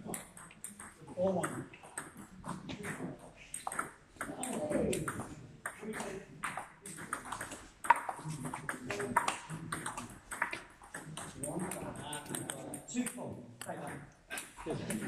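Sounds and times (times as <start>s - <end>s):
table tennis ball ticking: 0.0s - 14.6s
voices in a hall: 0.0s - 15.0s.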